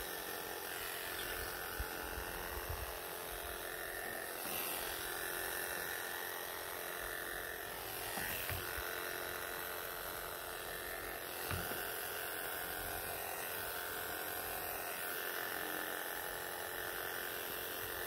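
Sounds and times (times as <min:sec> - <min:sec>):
electric clipper buzzing: 0:00.0 - 0:18.0.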